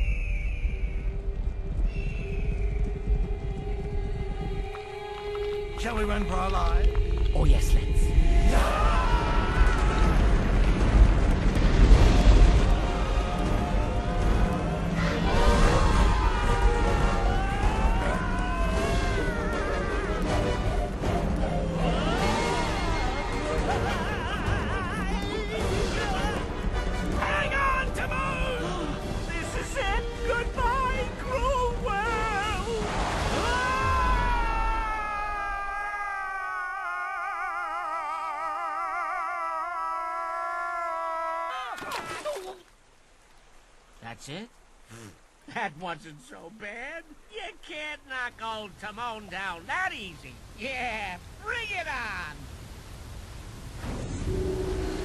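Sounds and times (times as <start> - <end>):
dramatic orchestral music: 3.2 - 33.5
rushing blast with deep rumble: 8.0 - 23.2
long high scream: 33.4 - 42.2.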